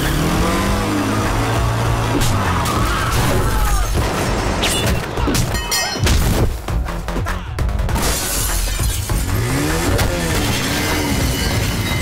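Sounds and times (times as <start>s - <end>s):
action film music: 0.0s - 12.0s
motorcycle crashing and sliding: 8.0s - 12.0s.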